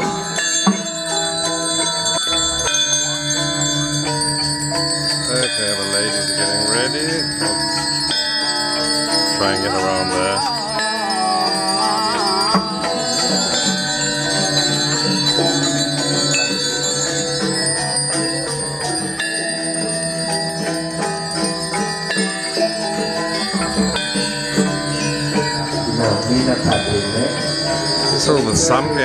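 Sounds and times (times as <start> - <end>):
gamelan playing: 0.0 - 29.0.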